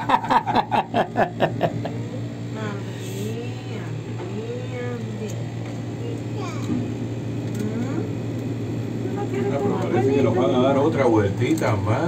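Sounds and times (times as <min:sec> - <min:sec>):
low mechanical hum: 0:00.0 - 0:12.0
soft indistinct voices: 0:02.0 - 0:12.0.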